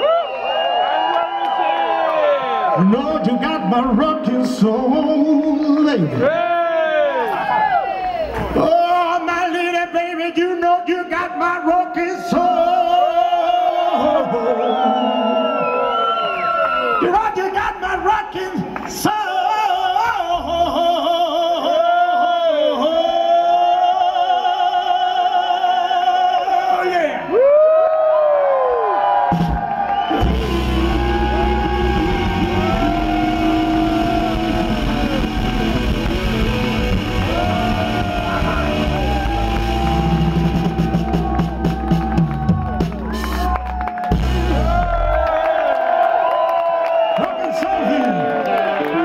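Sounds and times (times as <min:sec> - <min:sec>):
crowd cheering and whooping: 0:00.0 - 0:08.8, 0:12.3 - 0:17.2, 0:21.6 - 0:49.0
live rock band: 0:29.2 - 0:45.4
sliding bending guitar notes: 0:30.2 - 0:42.0.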